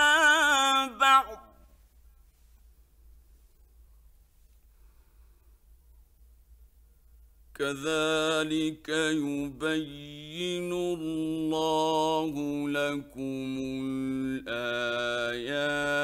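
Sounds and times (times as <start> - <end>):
man chanting recitation: 0.0 - 1.5, 7.6 - 16.0.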